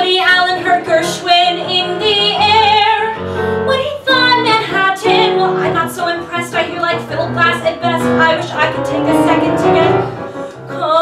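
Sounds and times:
keyboard accompaniment: 0:00.0 - 0:11.0
woman singing with vibrato: 0:00.0 - 0:11.0.

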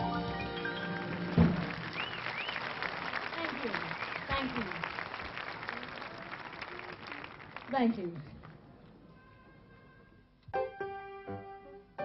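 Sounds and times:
audience applauding and cheering: 0:00.0 - 0:08.6
rising and falling whistles: 0:01.9 - 0:02.6.

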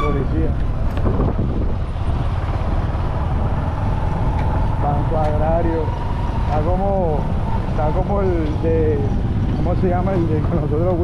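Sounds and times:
wind on microphone: 0:00.0 - 0:05.0
vehicle engine and road rumble: 0:00.0 - 0:11.0.

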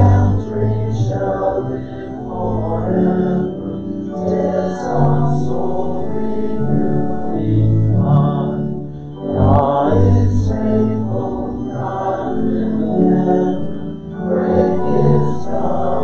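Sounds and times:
congregation singing a hymn: 0:00.0 - 0:16.0.

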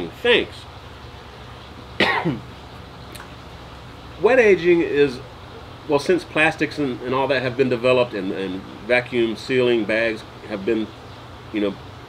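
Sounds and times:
man coughing: 0:02.0 - 0:02.5.

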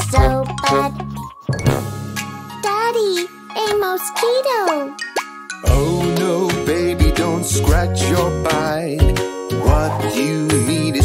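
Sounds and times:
children's music with bass beat: 0:00.0 - 0:11.0.

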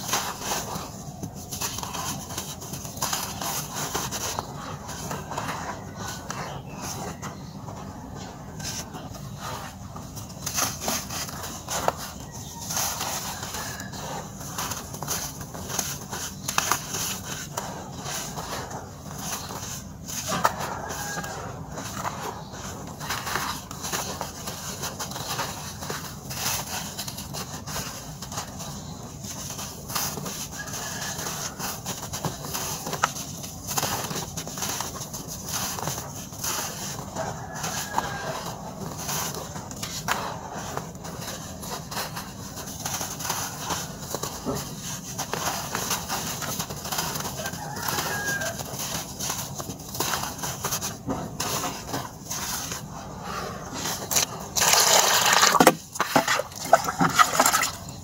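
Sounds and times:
dry dirt crumbling by hand: 0:00.0 - 0:58.0.

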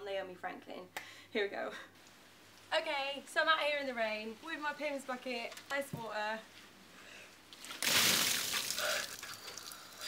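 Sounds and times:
loud water splash: 0:07.8 - 0:09.1.

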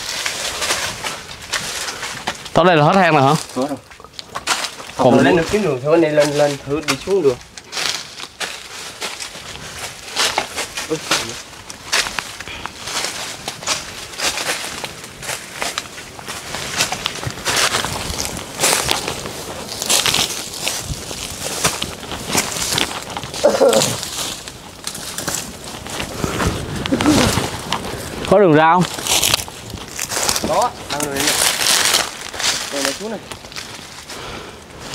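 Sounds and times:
footsteps crunching dry leaves: 0:00.0 - 0:34.9
twigs snapping: 0:06.2 - 0:34.1.

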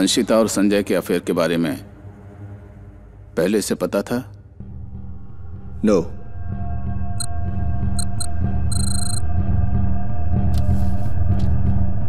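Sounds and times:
electronic beeps: 0:08.0 - 0:09.2.

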